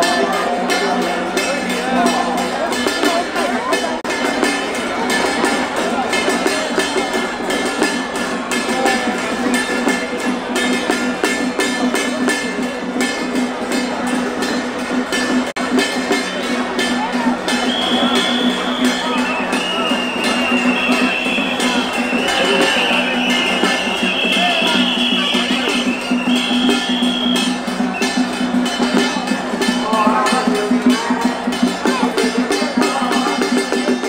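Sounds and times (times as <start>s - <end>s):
crowd voices: 0.0s - 34.0s
procession music with percussion: 0.0s - 34.0s.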